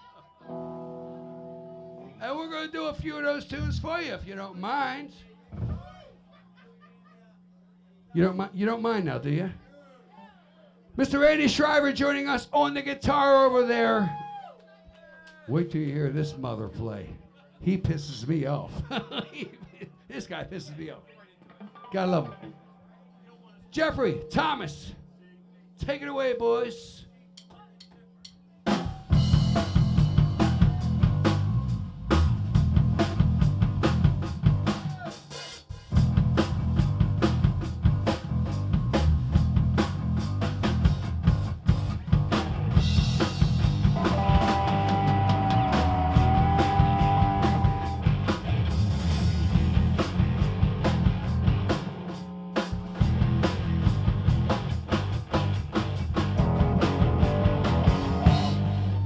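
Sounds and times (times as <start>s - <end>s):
live rock band playing: 28.7s - 59.0s.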